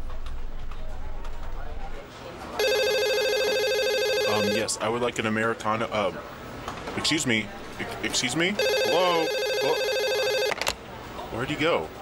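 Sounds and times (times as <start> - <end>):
trilling electronic ringtone: 2.6 - 4.7, 8.6 - 10.5.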